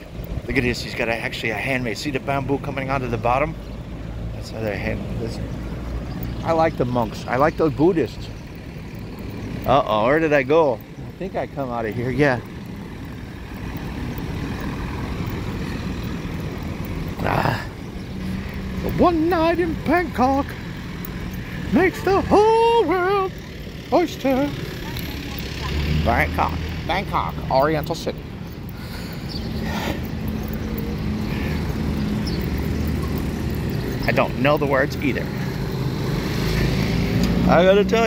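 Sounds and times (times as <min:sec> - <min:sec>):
road traffic rumble: 0:00.0 - 0:38.0
vehicle engine humming: 0:00.0 - 0:38.0.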